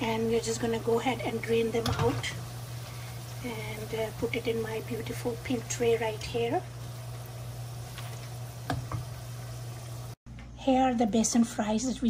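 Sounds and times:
fries sizzling in hot oil: 0.0 - 10.2.

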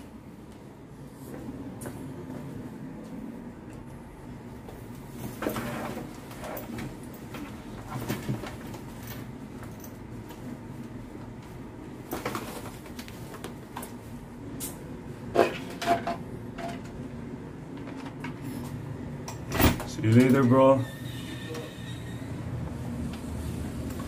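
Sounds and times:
brief squeak: 20.8 - 22.3.

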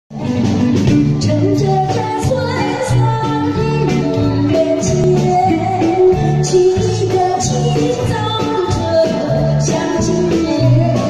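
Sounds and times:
live band playing: 0.1 - 11.0
woman singing pop ballad: 1.2 - 11.0.

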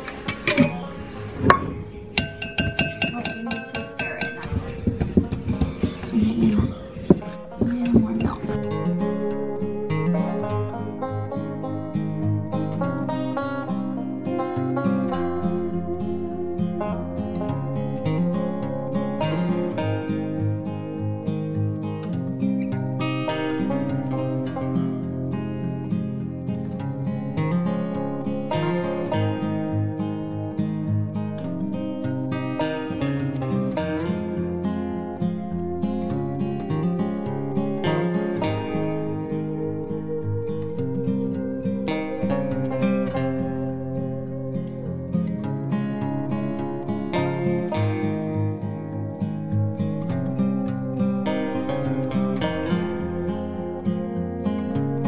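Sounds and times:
acoustic guitar music: 0.0 - 55.0
utensil stirring in glass bowl: 2.2 - 4.8.

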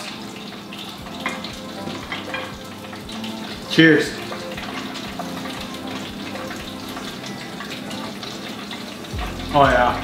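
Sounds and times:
oil sizzling in deep fryer: 0.0 - 10.0.

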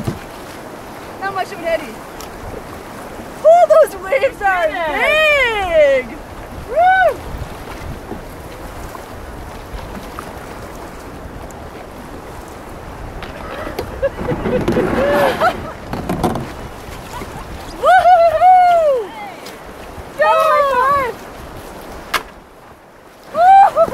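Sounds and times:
water splashing: 0.0 - 23.9
person whooping: 6.7 - 7.2, 15.0 - 15.7, 17.2 - 19.4, 23.3 - 23.9
river rapids rushing: 12.7 - 22.2.

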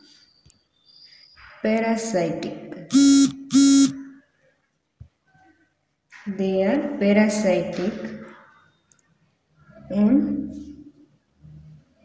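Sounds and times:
short electronic buzzes: 2.9 - 4.2.

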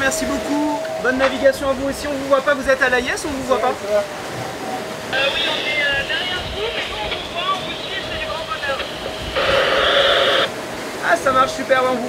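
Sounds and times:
radio static hiss: 5.0 - 10.5
garbled voice over radio: 5.2 - 10.5.

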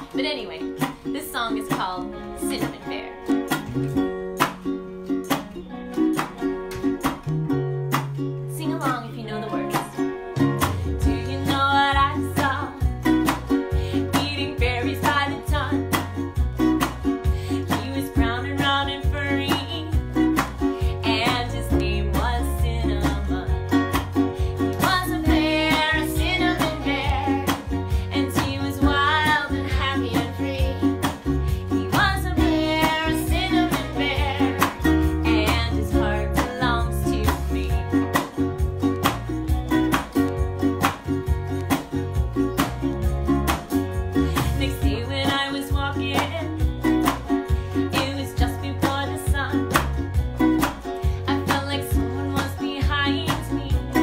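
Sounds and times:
strummed acoustic guitar: 0.0 - 54.0
woman singing: 8.5 - 10.0, 11.0 - 13.0, 13.9 - 16.2, 17.5 - 20.1, 20.9 - 23.7, 24.6 - 38.2, 44.4 - 47.2, 47.8 - 50.1, 51.2 - 54.0.

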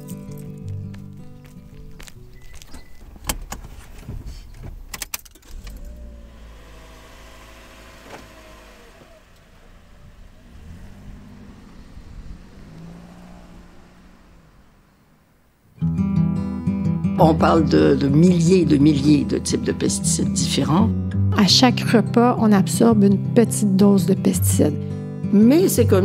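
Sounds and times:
music: 0.0 - 3.0, 15.8 - 26.0
vehicle engine running: 5.5 - 15.7, 17.2 - 26.0.

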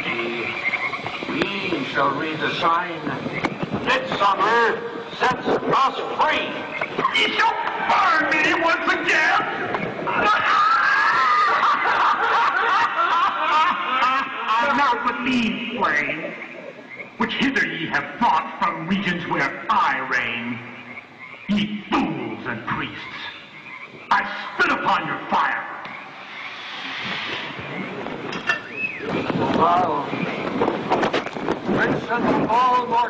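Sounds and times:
steady hiss: 0.0 - 32.9
man laughing mockingly: 10.2 - 14.4.

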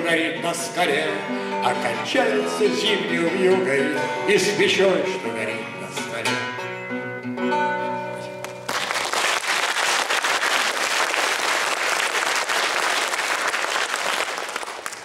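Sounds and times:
acoustic guitar notes ringing: 0.1 - 8.6
audience applauding: 8.4 - 15.0.

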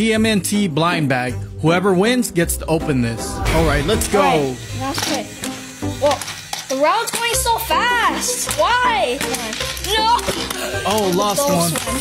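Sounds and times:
small motor whirring: 4.5 - 12.0.

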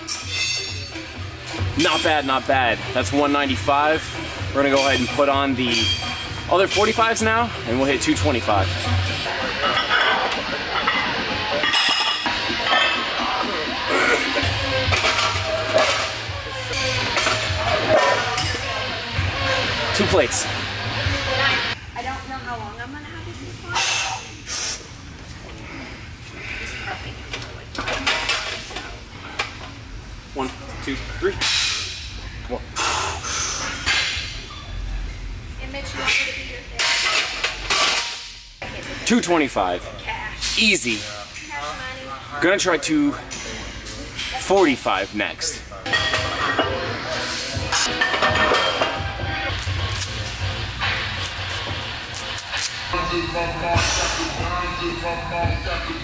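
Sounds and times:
music with low bass line: 52.9 - 56.0.

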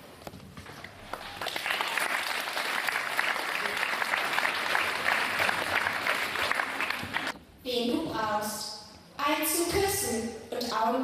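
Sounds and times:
audience applauding: 0.8 - 7.3.

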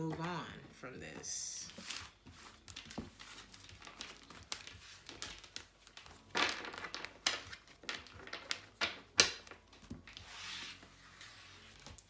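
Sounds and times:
cards being shuffled: 1.6 - 12.0.

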